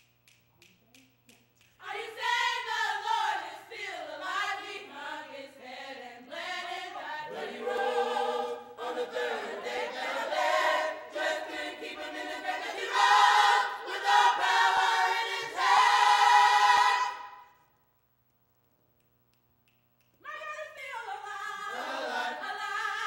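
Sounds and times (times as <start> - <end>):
gospel choir singing: 1.8 - 17.5, 21.0 - 23.0.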